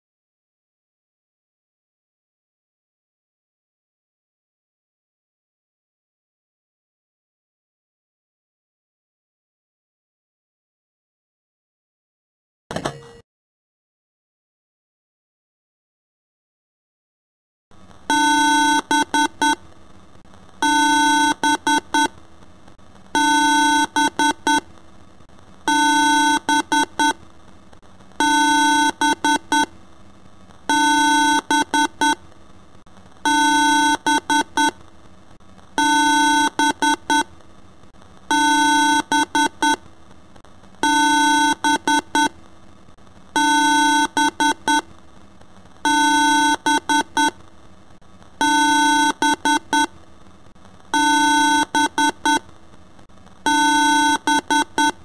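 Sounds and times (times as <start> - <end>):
harsh electronic alarm beeps: 18.1 - 19.6, 23.2 - 24.6, 25.7 - 27.2, 30.7 - 32.2, 33.3 - 34.7, 35.8 - 37.2, 43.4 - 44.8, 45.9 - 47.3, 48.4 - 49.9, 51.0 - 52.4, 53.5 - 55.0.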